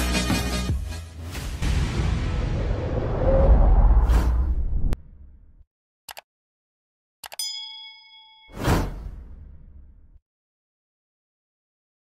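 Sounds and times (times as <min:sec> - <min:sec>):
whoosh: 0:01.6 - 0:05.0
quick clicks: 0:06.1 - 0:06.3
bell-like ding: 0:07.3 - 0:09.0.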